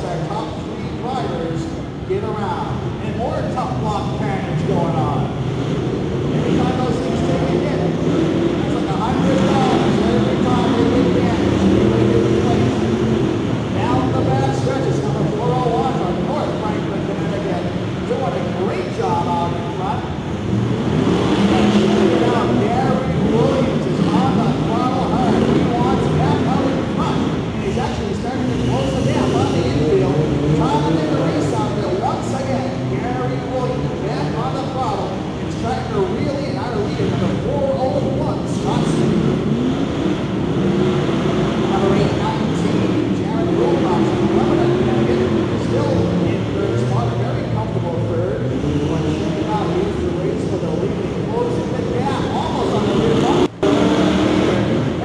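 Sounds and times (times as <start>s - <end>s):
race truck engines revving: 0.0s - 55.0s.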